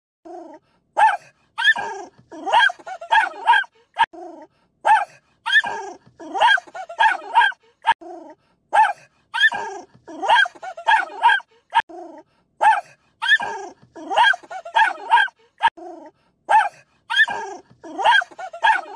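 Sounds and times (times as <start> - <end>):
dog barking: 1.0 - 4.1, 4.9 - 8.0, 8.8 - 11.8, 12.6 - 15.8, 16.5 - 18.9.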